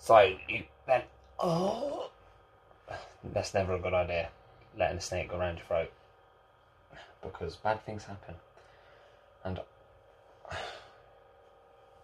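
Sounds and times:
man sighing: 1.4 - 2.2, 10.4 - 11.0.

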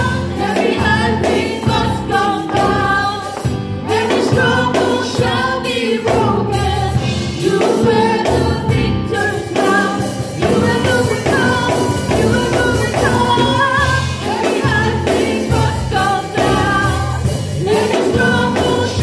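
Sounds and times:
group singing gospel in harmony: 0.0 - 19.0
musical accompaniment with bass: 0.0 - 19.0.

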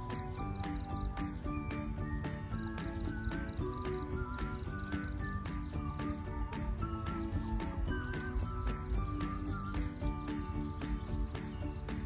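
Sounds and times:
background music with gliding melody: 0.0 - 12.0
clip-clop percussive beat: 0.0 - 12.0.

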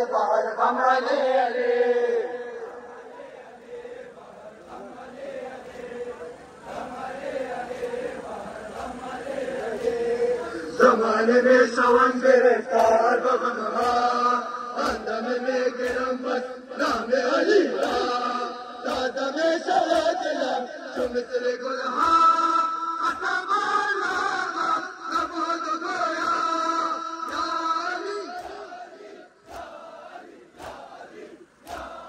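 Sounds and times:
men chanting in unison: 0.0 - 32.0
hands slapping chests: 12.8 - 13.0, 13.8 - 14.2, 28.4 - 28.6, 30.6 - 32.0.

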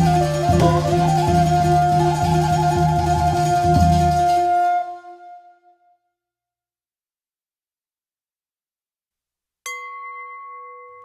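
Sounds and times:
bell-like chime ringing: 9.7 - 11.0.

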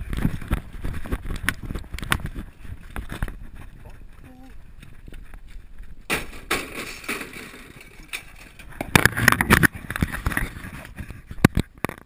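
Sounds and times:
camera scraping against clothing: 8.2 - 12.0.

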